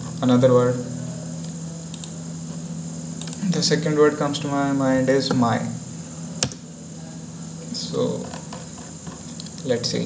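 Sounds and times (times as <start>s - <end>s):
electrical hum and hiss: 0.0s - 10.0s.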